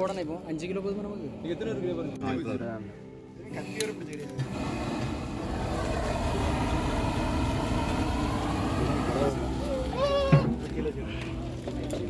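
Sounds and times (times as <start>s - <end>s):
gas burner flame rushing: 4.4s - 10.9s.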